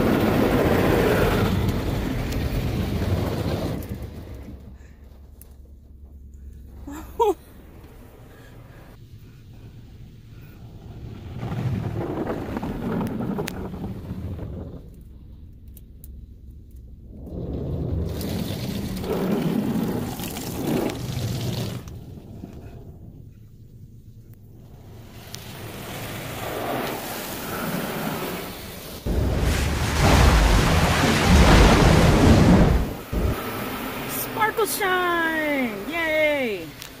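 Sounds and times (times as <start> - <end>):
water spray on car: 17.3 - 22.4, 25.0 - 34.8
wash brushes rushing over car: 25.1 - 34.2.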